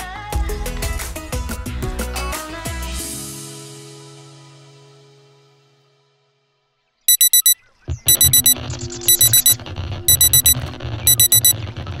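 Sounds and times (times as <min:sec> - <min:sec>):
alarm clock beeping: 0:07.1 - 0:11.5.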